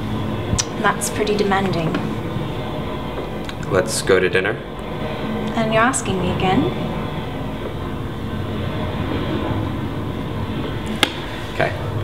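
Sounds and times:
train carriage rumble: 0.0s - 12.0s.

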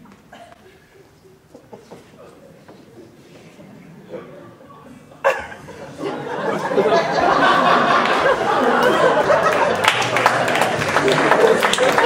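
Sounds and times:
audience chuckling: 0.3s - 2.6s, 4.1s - 12.0s.

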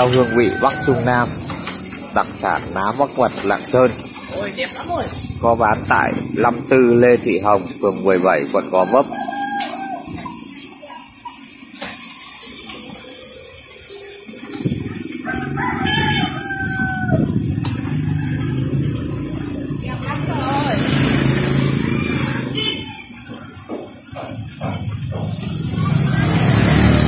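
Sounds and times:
rooster crowing: 0.0s - 4.1s, 5.1s - 10.6s, 14.8s - 24.1s, 25.6s - 27.0s
street noise: 0.0s - 27.0s.

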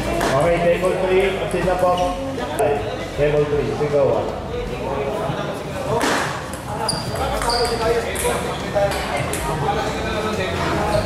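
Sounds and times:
hall full of voices: 0.0s - 11.0s
table tennis ball pinging: 6.5s - 9.5s.

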